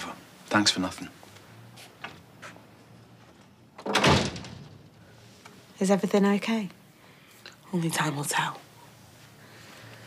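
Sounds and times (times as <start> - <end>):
door slamming: 3.8 - 5.0.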